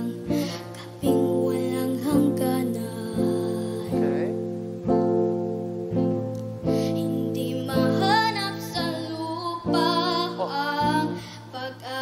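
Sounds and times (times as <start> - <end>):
classical guitar strummed chords: 0.0 - 12.0.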